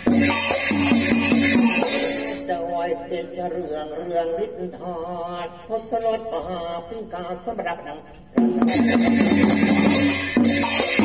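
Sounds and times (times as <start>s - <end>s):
man chanting sung verse: 1.9s - 8.8s.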